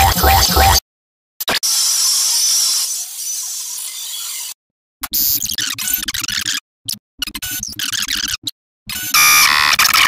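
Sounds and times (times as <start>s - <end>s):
loud harsh buzzing tone: 0.0s - 0.8s.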